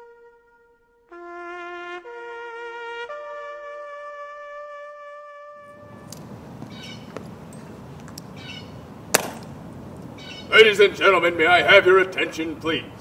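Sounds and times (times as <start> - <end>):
trumpet long note: 0.0 - 6.1.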